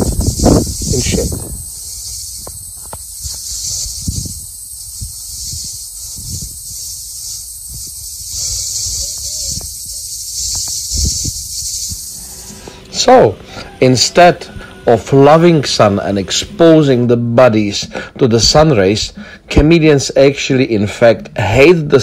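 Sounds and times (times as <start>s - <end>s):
wind buffeting microphone: 0.0s - 12.6s
insects chorus: 0.0s - 22.0s.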